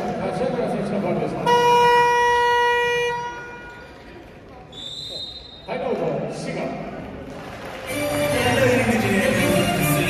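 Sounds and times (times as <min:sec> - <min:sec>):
arena horn blast: 0:01.4 - 0:03.8
crowd chatter: 0:02.2 - 0:05.4, 0:06.7 - 0:10.0.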